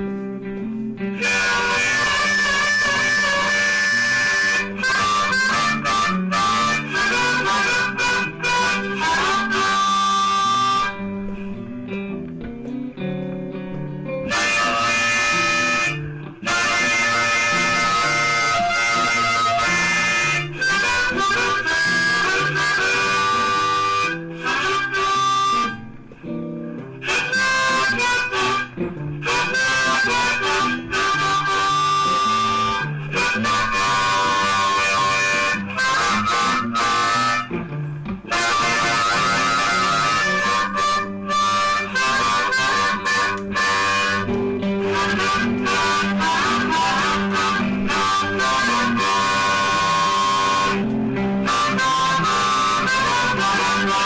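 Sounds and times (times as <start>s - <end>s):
backing track with guitar: 0.0s - 54.0s
harmonica playing blues: 0.0s - 54.0s.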